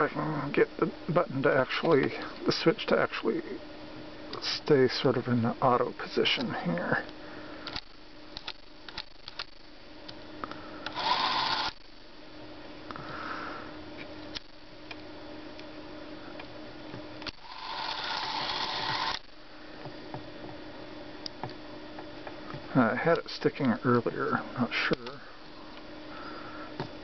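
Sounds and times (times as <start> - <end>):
clockwork motor whirring: 10.8 - 11.8, 17.2 - 19.3.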